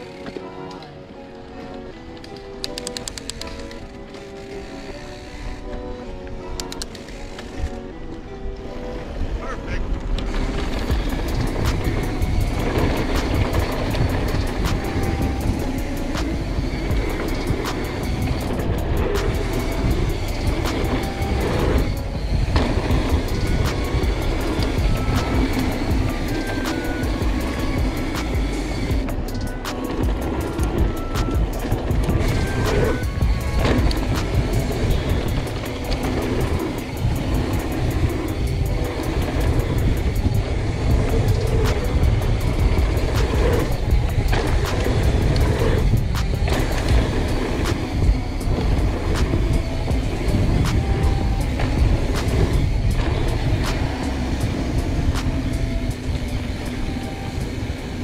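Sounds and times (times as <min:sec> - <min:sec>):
background music with stepping melody: 0:00.0 - 0:58.0
bike tyres rolling over dirt: 0:00.0 - 0:58.0.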